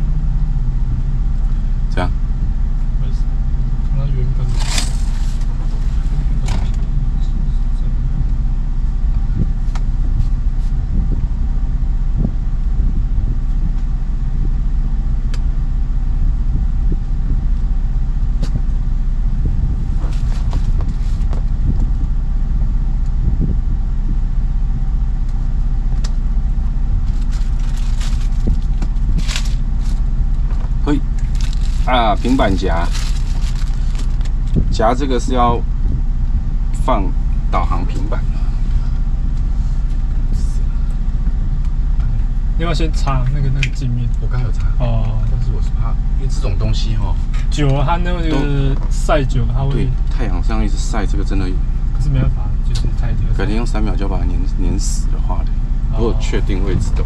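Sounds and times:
boat engine drone: 0:00.0 - 0:57.0.

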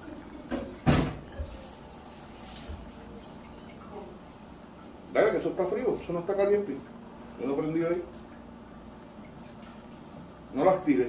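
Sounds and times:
clatter of kitchen things: 0:00.5 - 0:01.8.

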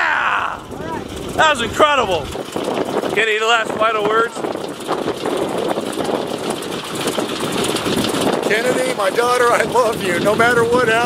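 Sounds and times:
propeller plane engine idling: 0:00.0 - 0:11.0.

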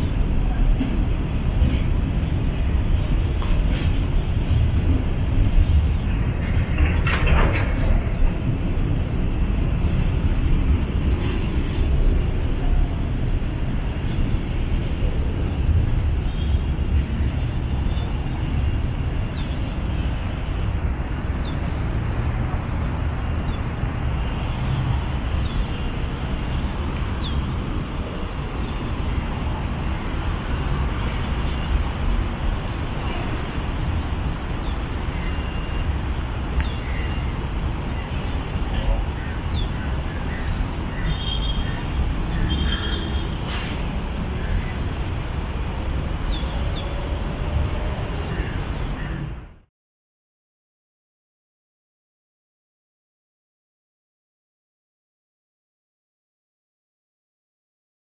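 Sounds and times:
train wagons rumbling on rails: 0:00.0 - 0:49.4.

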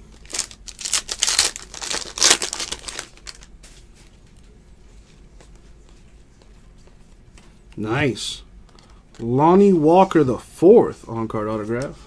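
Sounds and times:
foil wrapper crinkling and tearing: 0:00.1 - 0:03.5.

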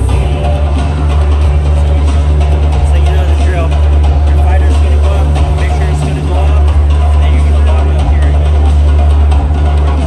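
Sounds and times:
bass-heavy music over sound system: 0:00.0 - 0:10.0.

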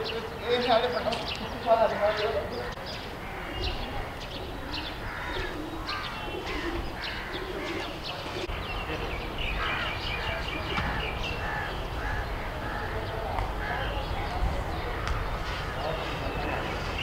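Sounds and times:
birds chirping: 0:00.0 - 0:17.0.

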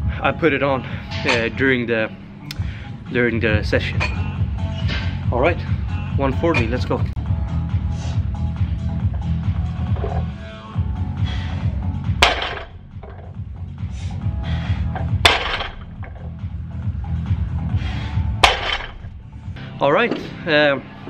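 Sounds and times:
barbell dropping on gym floor: 0:12.2 - 0:13.3, 0:15.0 - 0:16.2, 0:18.4 - 0:19.1.

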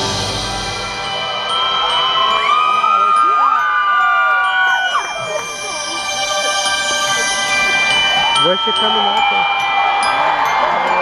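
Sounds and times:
live band holding chord: 0:00.0 - 0:02.3
audience cheering and screaming: 0:00.0 - 0:08.5, 0:09.3 - 0:11.0.

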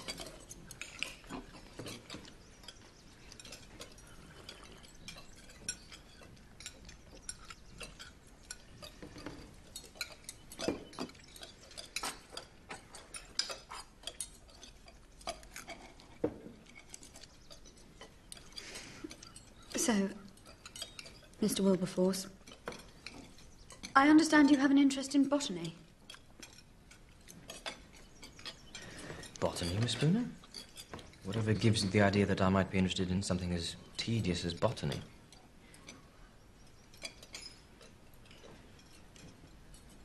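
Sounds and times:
cutlery and china clinking: 0:00.0 - 0:40.0.

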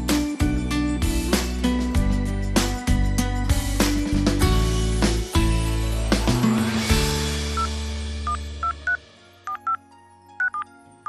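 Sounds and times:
music jingle: 0:04.1 - 0:11.0
phone keypad beeps: 0:08.3 - 0:09.8, 0:10.4 - 0:10.7.

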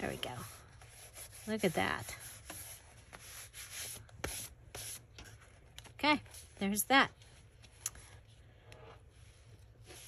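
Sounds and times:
hands brushing on paper: 0:00.0 - 0:06.6, 0:08.6 - 0:10.0.

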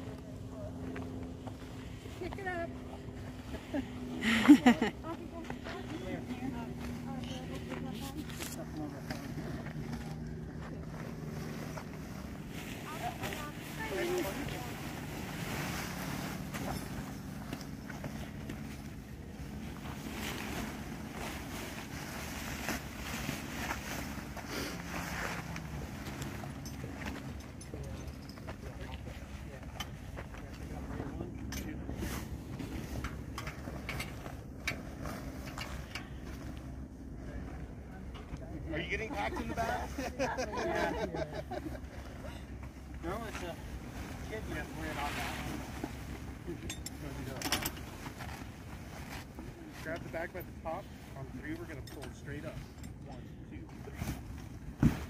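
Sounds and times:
low steady hum: 0:00.0 - 0:55.0
fabric rustling and swishing: 0:10.8 - 0:27.3, 0:43.0 - 0:51.0.

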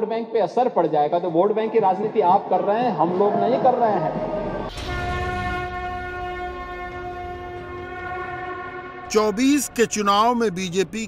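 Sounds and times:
conch shell blown: 0:04.8 - 0:09.7.

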